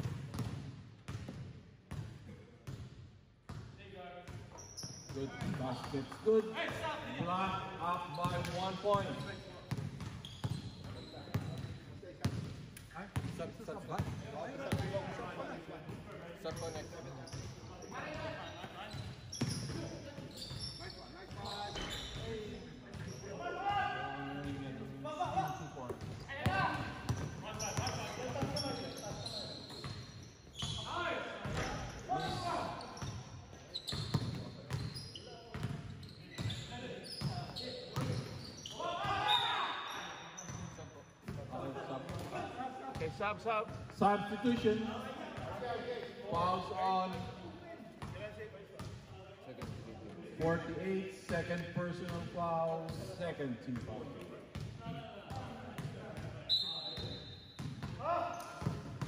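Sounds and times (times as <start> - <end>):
basketball bouncing on court floor: 0.0 - 2.9, 8.2 - 14.9, 25.9 - 28.7, 33.9 - 34.9, 37.2 - 38.3
players calling out: 38.5 - 40.0.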